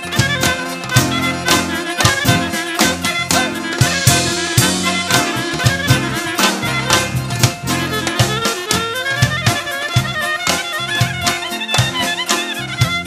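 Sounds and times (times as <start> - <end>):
clarinet melody: 0.0 - 13.0
steady beat: 0.0 - 13.0
trumpet melody: 0.0 - 13.0.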